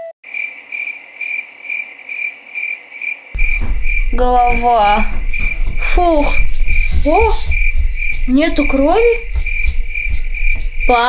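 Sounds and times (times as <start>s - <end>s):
cricket chirping: 0.3s - 11.0s
low rumble: 3.4s - 11.0s.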